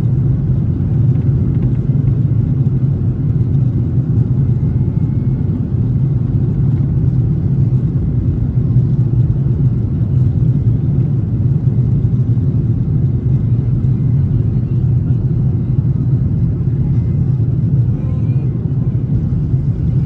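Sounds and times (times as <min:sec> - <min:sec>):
jet engines rumbling: 0:00.0 - 0:20.0.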